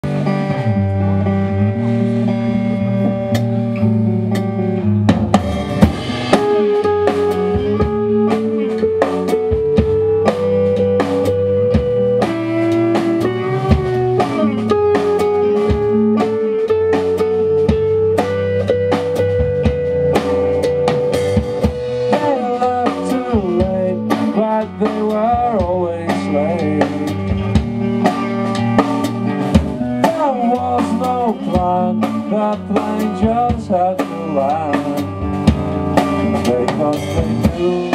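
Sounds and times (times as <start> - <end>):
drum kit: 0.0 - 37.9
electric guitars: 0.0 - 37.9.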